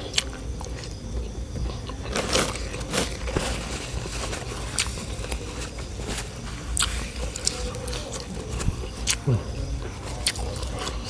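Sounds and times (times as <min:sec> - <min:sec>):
person chewing and biting food: 0:01.7 - 0:11.0.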